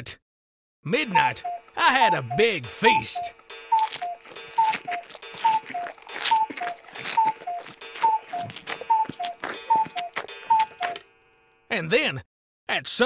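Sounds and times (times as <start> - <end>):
clock ticking in two pitches: 1.2 - 10.9
cartoon chomping and gobbling: 3.7 - 11.0.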